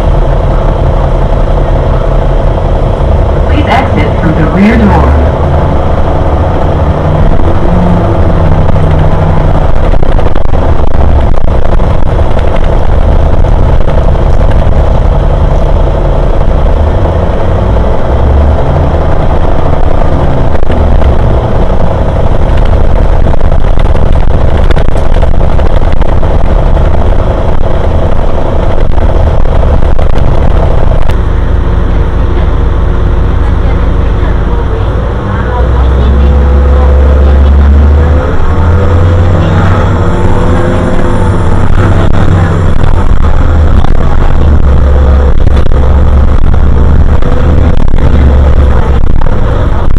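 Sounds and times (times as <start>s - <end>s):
bus engine rumble: 0.0s - 49.9s
drivetrain note rising and falling: 0.0s - 49.9s.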